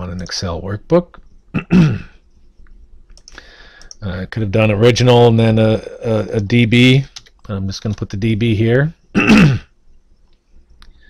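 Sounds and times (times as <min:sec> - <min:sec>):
man clearing throat: 0:01.5 - 0:02.2, 0:09.2 - 0:09.7
faint click: 0:02.6 - 0:04.0.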